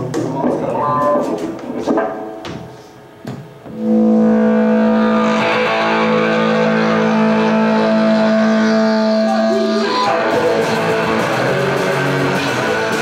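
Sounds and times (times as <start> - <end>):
electric guitar chord ringing: 3.7 - 13.0.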